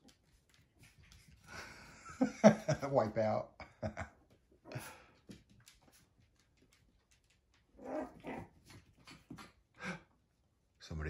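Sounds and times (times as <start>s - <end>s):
puppies growling and yipping: 7.7s - 9.5s.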